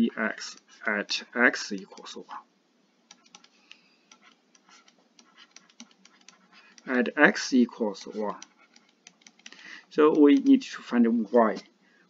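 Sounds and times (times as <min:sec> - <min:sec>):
stylus tapping on tablet screen: 0:03.0 - 0:07.0, 0:07.8 - 0:10.6.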